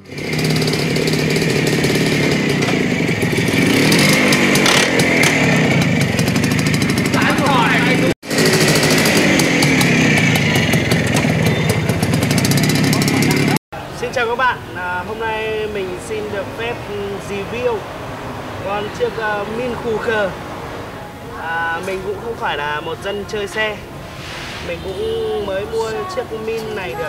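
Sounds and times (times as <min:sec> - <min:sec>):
motorcycle engine revving: 0:00.0 - 0:13.6.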